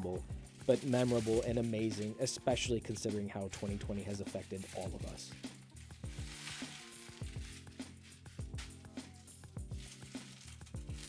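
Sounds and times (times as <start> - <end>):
background music with beat: 0.0 - 11.0
plastic packaging crinkling: 0.0 - 11.0.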